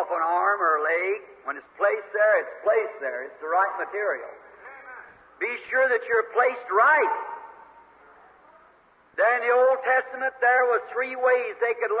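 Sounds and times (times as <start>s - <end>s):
man preaching: 0.0s - 7.6s, 9.2s - 12.0s
faint recording hiss: 0.0s - 12.0s.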